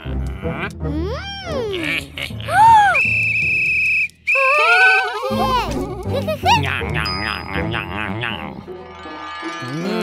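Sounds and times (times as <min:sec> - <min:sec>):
children's background music: 0:04.9 - 0:10.0.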